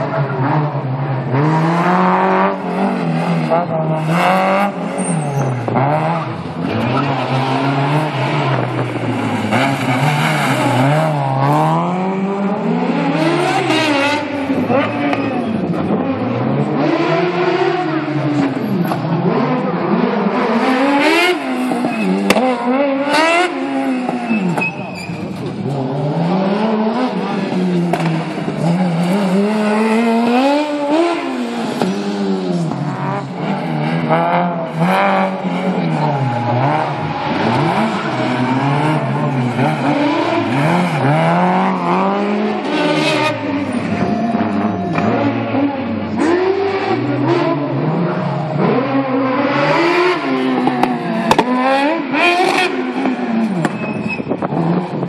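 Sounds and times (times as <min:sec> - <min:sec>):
race car engine revving: 0:00.0 - 0:55.0.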